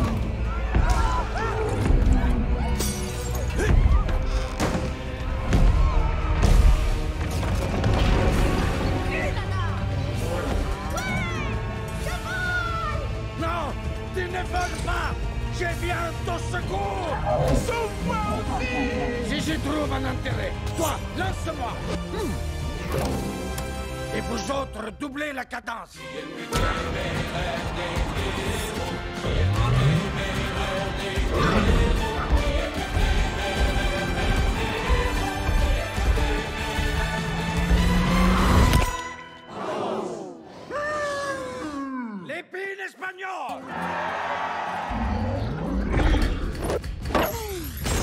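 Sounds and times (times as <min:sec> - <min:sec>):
people crying out and yelling: 0:00.1 - 0:02.8, 0:03.4 - 0:04.4, 0:10.1 - 0:13.8, 0:16.6 - 0:19.9, 0:39.4 - 0:42.4.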